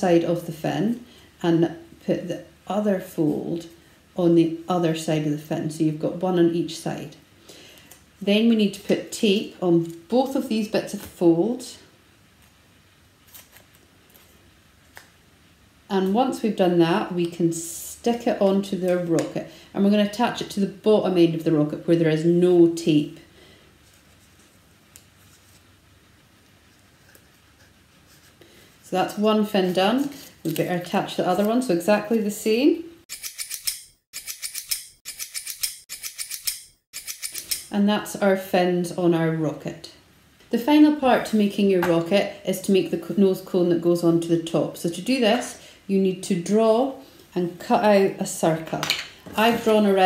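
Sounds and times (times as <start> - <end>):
paper rustling: 23.8 - 25.8.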